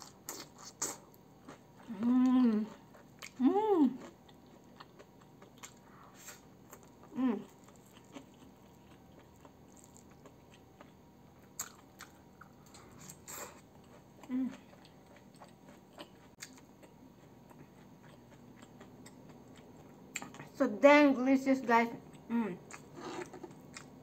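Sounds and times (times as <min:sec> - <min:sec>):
closed-mouth hum: 0:00.0 - 0:05.2
close chewing: 0:00.0 - 0:20.6, 0:22.1 - 0:24.0.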